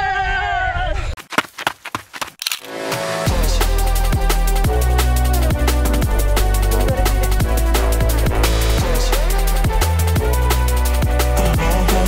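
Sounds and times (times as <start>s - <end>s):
drum and bass music: 2.6s - 12.0s.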